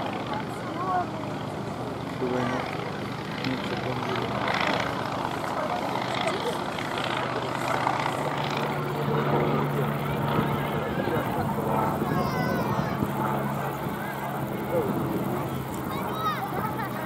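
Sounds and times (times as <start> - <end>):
biplane engine droning overhead: 0.0 - 17.0
people talking: 0.1 - 1.4, 2.1 - 17.0.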